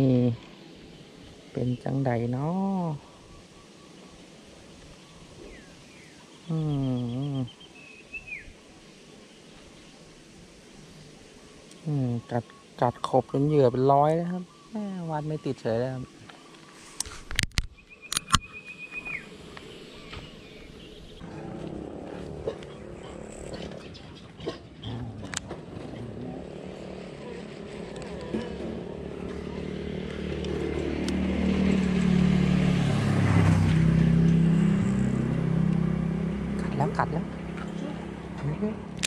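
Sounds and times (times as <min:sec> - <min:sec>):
sharp clicks: 0:16.3 - 0:18.5
vehicle engine running: 0:19.5 - 0:24.3, 0:25.1 - 0:39.0.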